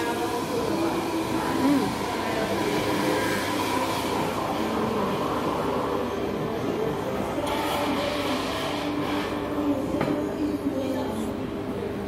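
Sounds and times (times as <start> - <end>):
cafe room noise: 0.0 - 12.0.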